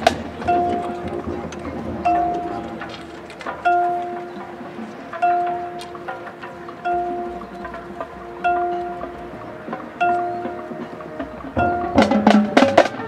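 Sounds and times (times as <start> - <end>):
bell-like percussion note ringing: 3.6 - 11.0.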